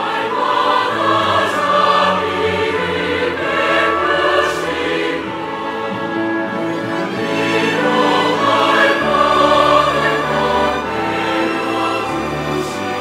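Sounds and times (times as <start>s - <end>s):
mixed choir singing a hymn: 0.0s - 13.0s.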